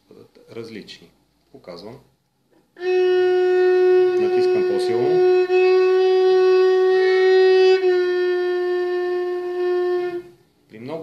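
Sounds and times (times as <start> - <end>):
bowed string instrument note: 2.8 - 10.2.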